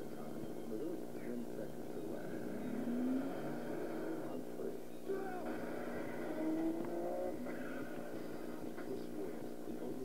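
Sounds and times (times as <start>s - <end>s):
car engine revving: 1.6s - 8.7s.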